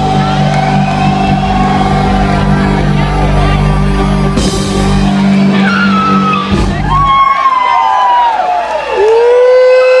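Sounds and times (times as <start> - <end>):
rock band sustained chord: 0.0 - 7.2
high notes sliding down: 0.0 - 7.8.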